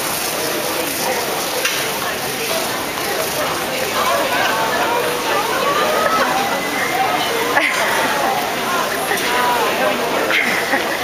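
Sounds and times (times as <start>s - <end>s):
faint murmuring voices: 0.0s - 11.0s
steady hiss of a terminal hall: 0.0s - 11.0s.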